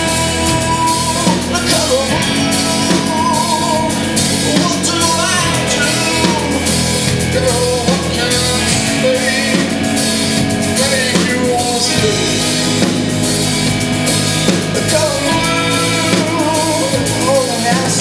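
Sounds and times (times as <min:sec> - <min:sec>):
lead singer: 0:00.0 - 0:18.0
live metal band: 0:00.0 - 0:18.0.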